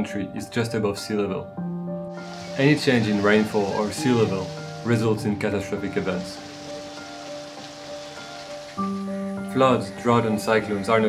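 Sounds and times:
soft background music: 0:00.0 - 0:11.0
rain hissing: 0:02.1 - 0:09.4.

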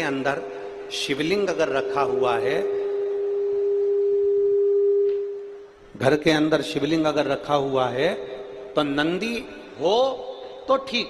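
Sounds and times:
steady pure tone: 0:00.0 - 0:10.8.

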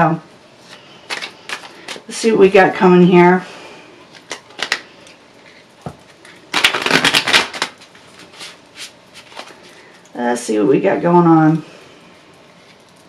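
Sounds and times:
cards being shuffled: 0:00.6 - 0:02.1, 0:04.1 - 0:04.8, 0:05.4 - 0:09.6.

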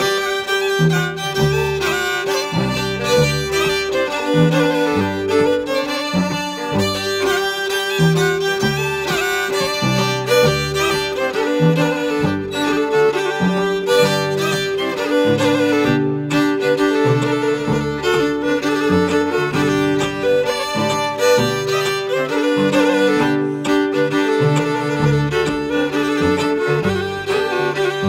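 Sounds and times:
fiddles playing folk tune: 0:00.0 - 0:28.0.

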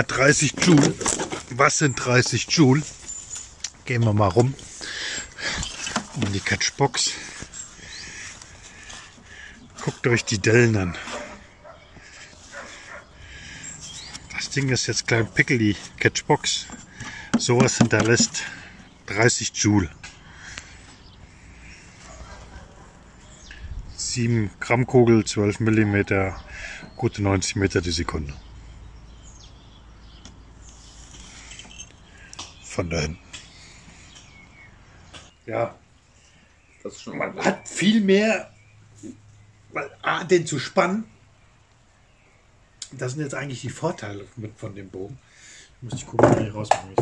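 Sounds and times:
faint high bird chirps: 0:28.3 - 0:35.5.

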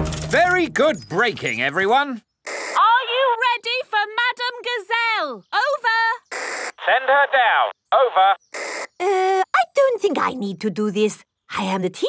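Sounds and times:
walkie-talkie static: 0:06.3 - 0:08.9
voice over radio: 0:06.8 - 0:08.4.

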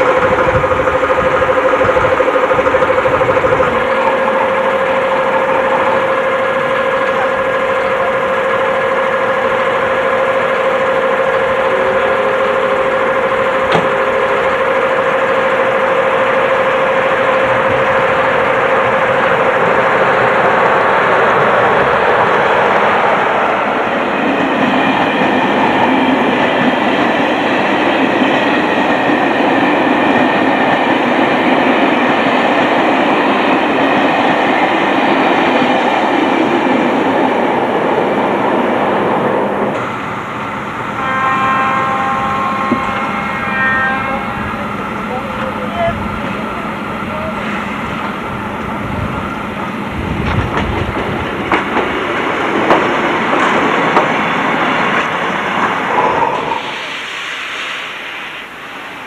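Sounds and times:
train hum: 0:00.0 - 0:59.0
train wheels rolling on rails: 0:00.0 - 0:59.0.

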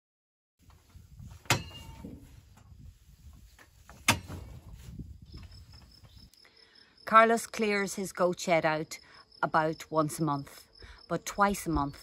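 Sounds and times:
sharp knocks: 0:01.4 - 0:02.1, 0:03.9 - 0:04.6.

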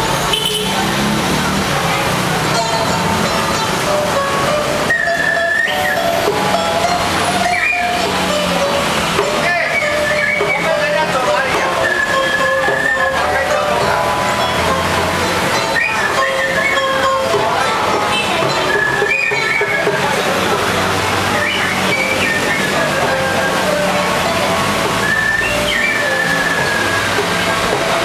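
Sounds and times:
pipa: 0:00.0 - 0:28.0
bamboo flute melody: 0:01.9 - 0:28.0.

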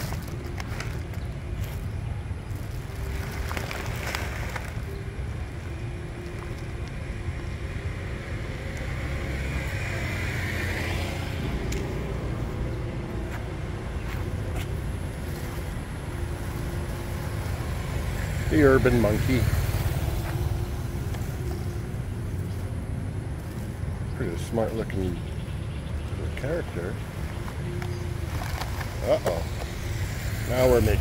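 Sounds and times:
low traffic rumble: 0:00.0 - 0:31.0
passing motor engines hum: 0:00.0 - 0:31.0.

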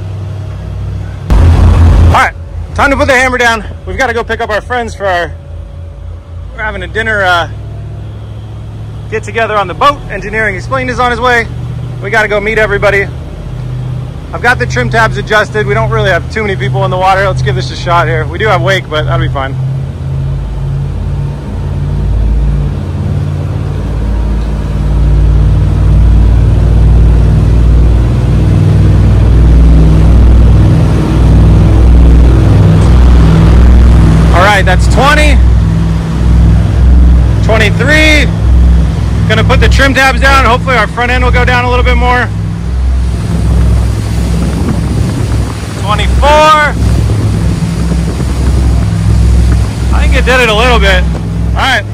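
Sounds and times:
boat engines droning: 0:00.0 - 0:51.9
water rushing past hull: 0:00.0 - 0:51.9
wind on microphone: 0:41.3 - 0:51.9.

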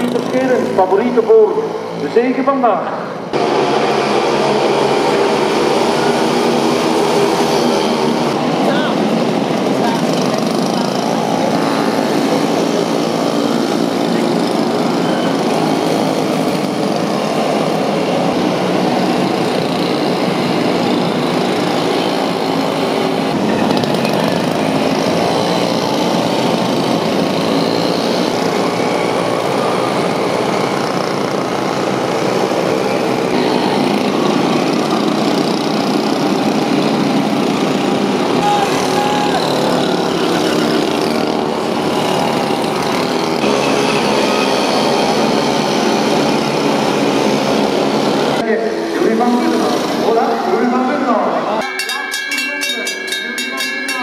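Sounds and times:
small motorbike engines passing: 0:00.0 - 0:54.0.

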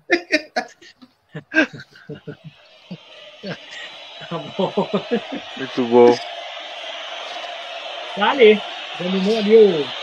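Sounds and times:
man's voice: 0:00.0 - 0:02.6, 0:03.4 - 0:06.2, 0:08.2 - 0:10.0.

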